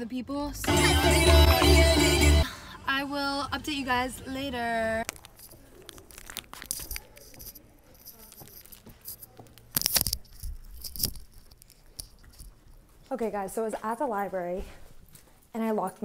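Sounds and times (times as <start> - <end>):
soft clicks and scuffs: 5.0 - 15.5.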